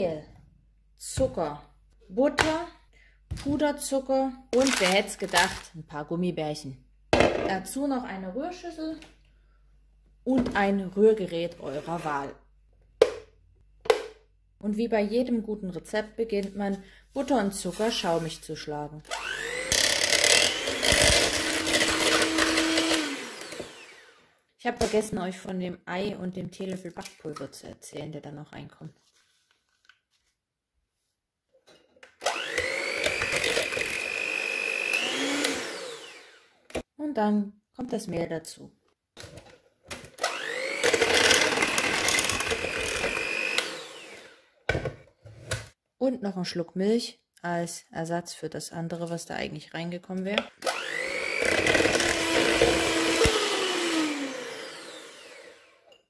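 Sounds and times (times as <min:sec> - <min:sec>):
electric hand mixer whirring: 0:19.1 - 0:24.3, 0:32.2 - 0:36.7, 0:40.2 - 0:44.6, 0:50.6 - 0:56.0.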